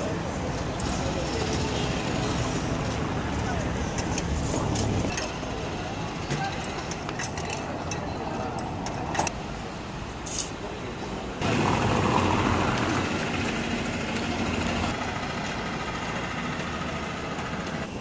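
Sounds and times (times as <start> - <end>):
city street traffic: 0.0 - 18.0.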